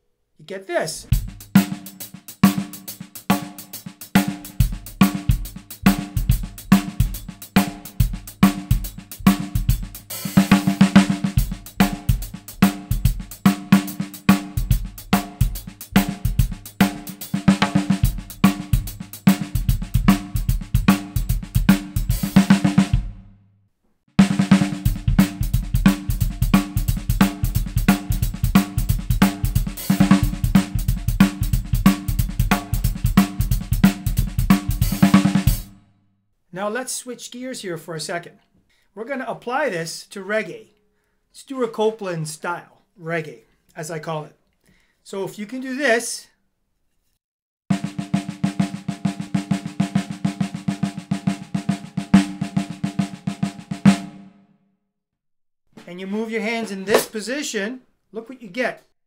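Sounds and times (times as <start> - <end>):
drum kit shuffle groove: 0.8 - 23.3, 24.2 - 35.8, 47.7 - 54.2, 55.8 - 57.3.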